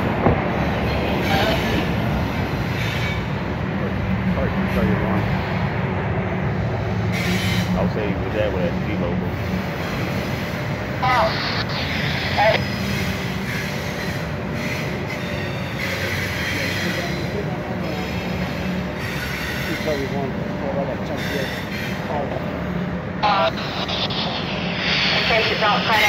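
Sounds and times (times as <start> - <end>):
freight train wheels rumbling: 0.0 - 26.0.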